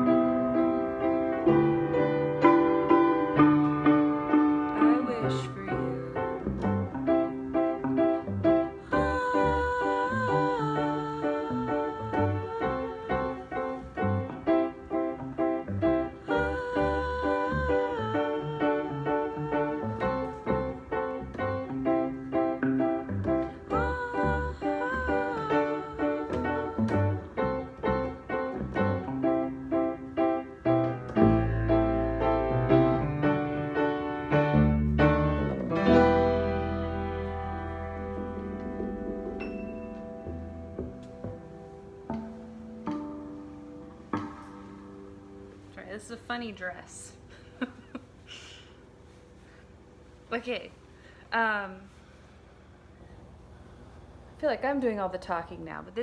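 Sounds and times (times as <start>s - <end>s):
electric guitar melody: 0.0s - 45.7s
piano: 0.0s - 56.0s.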